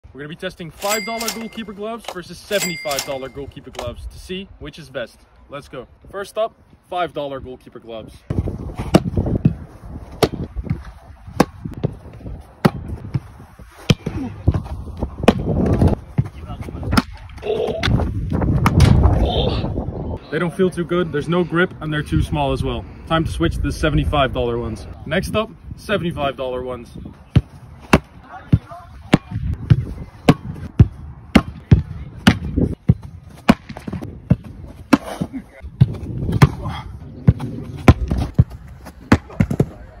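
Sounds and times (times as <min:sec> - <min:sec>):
football being kicked: 0:12.6 - 0:17.2, 0:17.9 - 0:19.0, 0:27.3 - 0:39.8.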